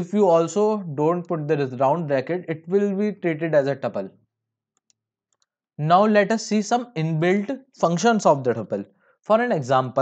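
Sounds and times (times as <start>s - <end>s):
man talking: 0.0s - 4.2s, 5.8s - 10.0s
computer mouse click: 4.7s - 5.6s.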